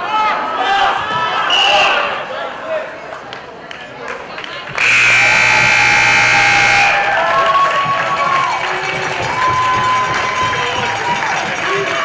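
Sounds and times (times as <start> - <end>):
crowd cheering and shouting: 0.0 - 2.8, 4.8 - 12.0
scoreboard buzzer: 4.8 - 7.1.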